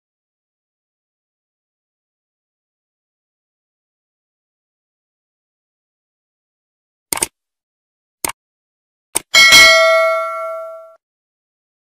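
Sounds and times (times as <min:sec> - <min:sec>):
notification bell ding: 0:09.4 - 0:11.0.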